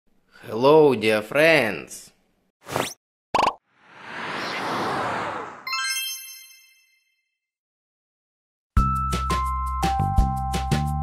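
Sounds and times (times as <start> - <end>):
bright high chime: 5.7 - 7.2.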